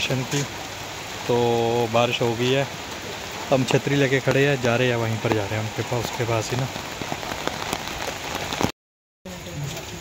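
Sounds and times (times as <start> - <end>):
rain on an umbrella: 0.0 - 10.0.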